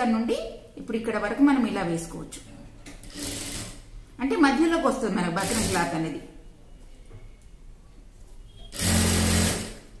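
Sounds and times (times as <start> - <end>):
sewing machine stitching: 3.0 - 3.9, 5.4 - 5.9, 8.7 - 10.0.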